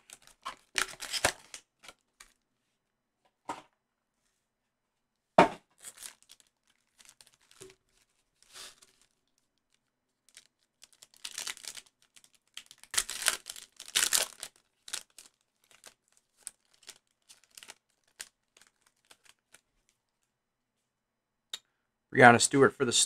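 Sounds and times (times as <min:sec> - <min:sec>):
foil pack tearing and crinkling: 0:00.0 - 0:02.4, 0:05.8 - 0:09.1, 0:10.3 - 0:19.6.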